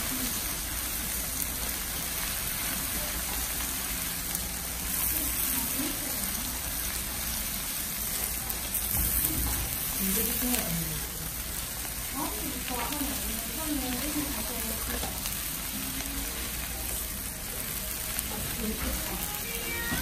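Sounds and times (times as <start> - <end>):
meat sizzling on a griddle: 0.0 - 20.0.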